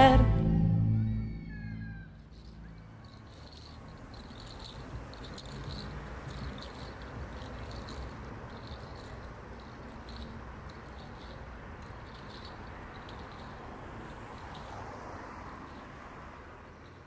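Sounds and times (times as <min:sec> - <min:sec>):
song's last note: 0:00.0 - 0:02.1
low steady street rumble: 0:00.0 - 0:17.0.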